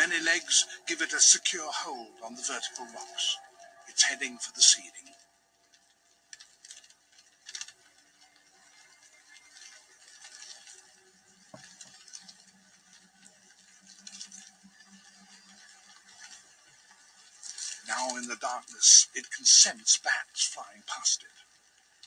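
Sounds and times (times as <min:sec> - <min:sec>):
faint low hum: 0:00.0 - 0:22.0.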